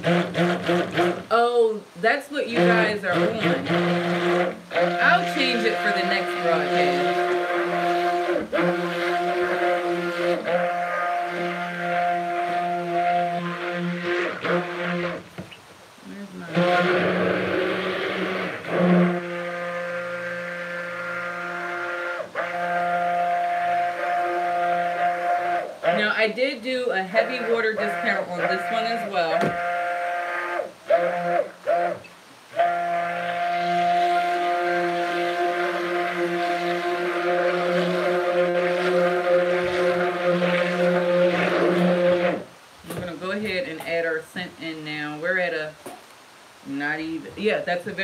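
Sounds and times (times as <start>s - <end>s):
stick blender motor hum: 0.0s - 1.6s, 2.4s - 15.5s, 16.4s - 43.0s.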